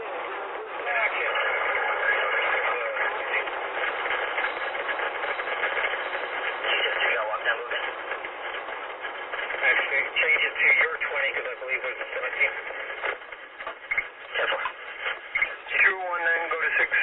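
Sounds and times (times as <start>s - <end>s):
police radio voices: 0.0s - 17.0s.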